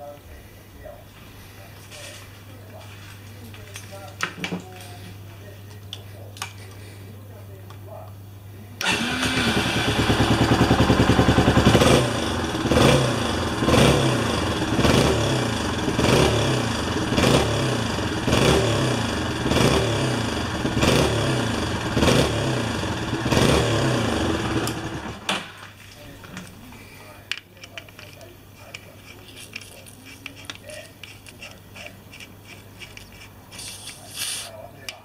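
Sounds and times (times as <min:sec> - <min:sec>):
motorcycle engine revving: 0:08.8 - 0:25.3.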